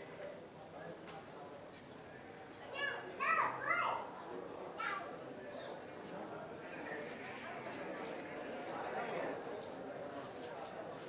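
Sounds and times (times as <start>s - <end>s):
low background murmur: 0.0s - 11.0s.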